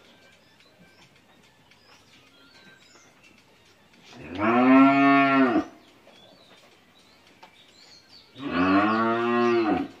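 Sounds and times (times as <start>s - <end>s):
cow mooing: 4.2s - 5.8s, 8.4s - 10.0s.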